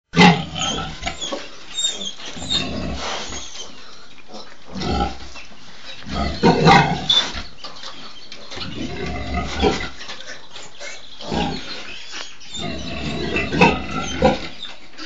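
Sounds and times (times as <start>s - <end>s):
pigs squealing and grunting: 0.2s - 15.0s.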